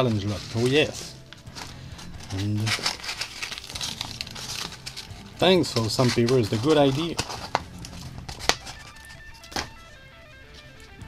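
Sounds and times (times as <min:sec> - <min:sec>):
wrapping crinkling and rustling: 0:00.0 - 0:11.0.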